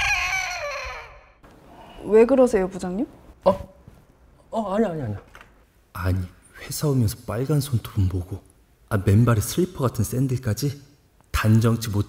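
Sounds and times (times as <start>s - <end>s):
rooster crowing: 0.0s - 1.4s.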